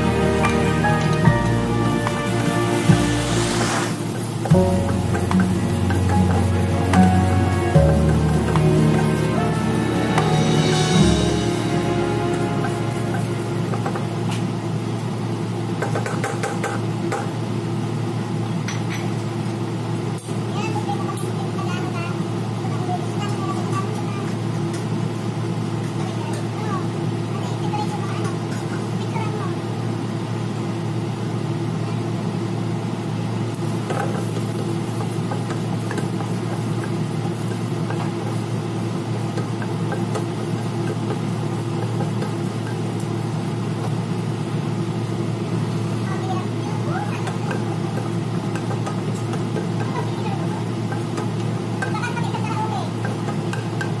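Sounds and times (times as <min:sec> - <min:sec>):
ginger frying in oil: 0:00.0 - 0:13.6, 0:32.3 - 0:54.0.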